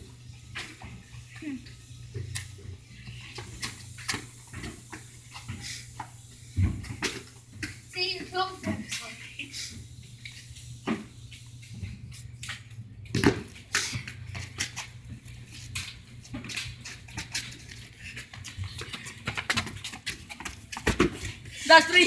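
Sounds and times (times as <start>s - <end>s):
ball thumping on concrete: 13.1s - 14.8s, 18.4s - 21.4s.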